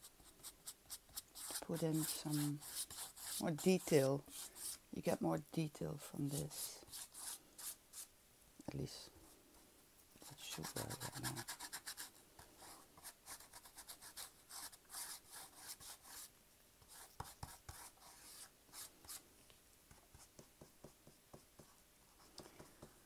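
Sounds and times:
paintbrush scratching on wood: 0:00.1 - 0:04.8, 0:10.3 - 0:16.3, 0:16.9 - 0:19.2.

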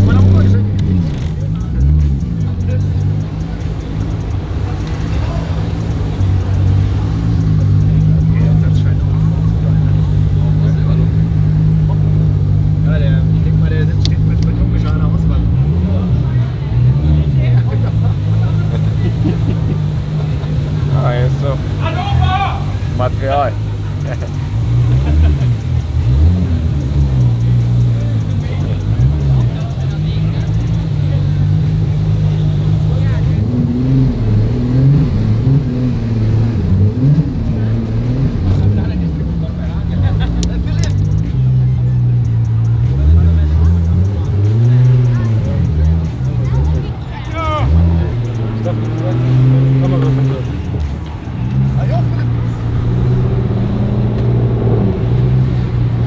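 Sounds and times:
car engine droning: 0:00.0 - 0:56.0
crowd voices outside: 0:00.0 - 0:56.0.

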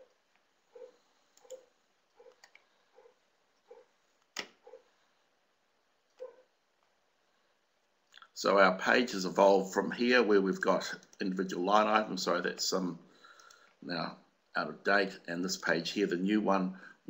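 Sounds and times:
soft computer clicks: 0:01.4 - 0:01.7, 0:13.4 - 0:13.7.

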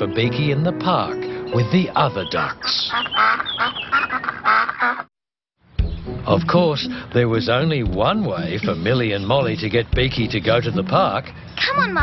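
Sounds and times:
cartoon duck quacking: 0:02.4 - 0:05.1.

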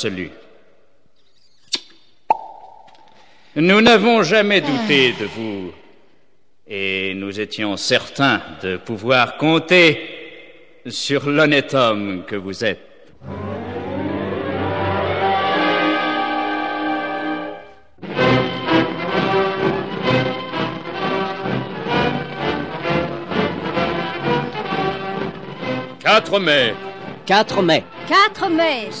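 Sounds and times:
kiss smacking pops: 0:01.6 - 0:03.1
orchestral bridge music: 0:13.2 - 0:29.0.

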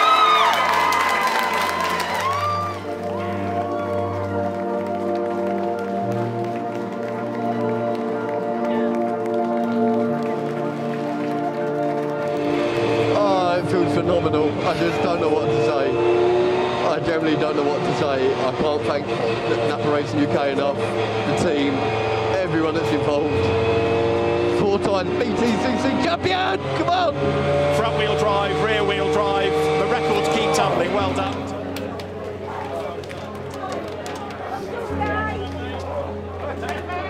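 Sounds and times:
voices shouting and cheering: 0:00.0 - 0:04.5
racing car engine: 0:00.0 - 0:37.0.

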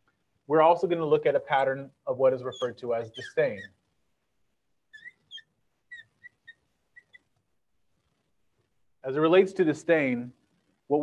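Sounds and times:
marker squeaking on glass: 0:02.2 - 0:04.1, 0:04.8 - 0:08.3.

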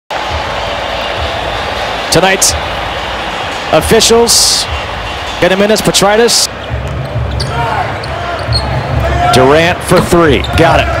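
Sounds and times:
arena crowd noise: 0:00.1 - 0:11.0.

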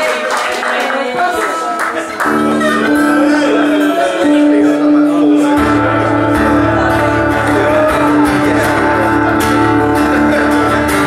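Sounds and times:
sustained low chord: 0:05.1 - 0:11.0.

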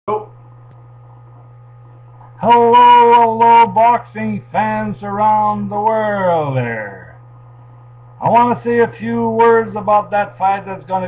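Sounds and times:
low electrical hum: 0:00.1 - 0:11.0.

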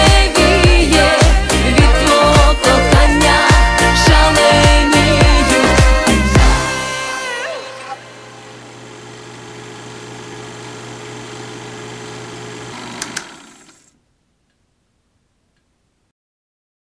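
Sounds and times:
pop song: 0:00.0 - 0:08.4
film projector whirring: 0:08.0 - 0:14.0
projector clicks: 0:12.9 - 0:13.4.

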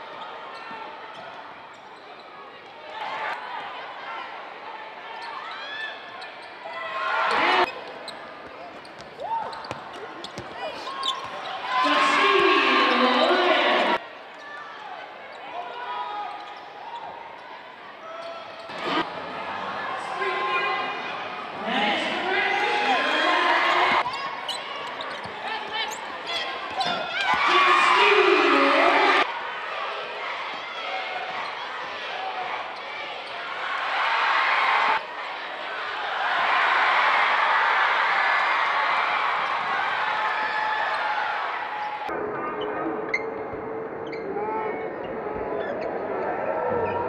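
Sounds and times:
shoe squeaks: 0:07.7 - 0:11.6, 0:24.0 - 0:27.4.

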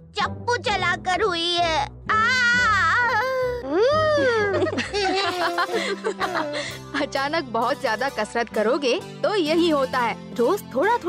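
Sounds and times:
cartoon boys moaning in pain: 0:02.1 - 0:04.7.

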